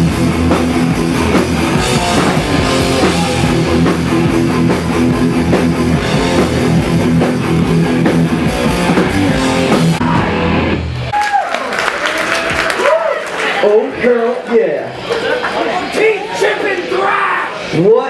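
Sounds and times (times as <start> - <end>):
thrash metal band playing: 0.0 - 11.2
people shouting: 1.7 - 4.0.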